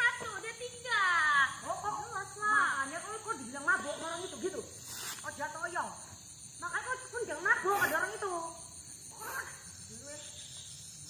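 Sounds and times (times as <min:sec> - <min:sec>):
burst of hiss: 0:04.7 - 0:05.5.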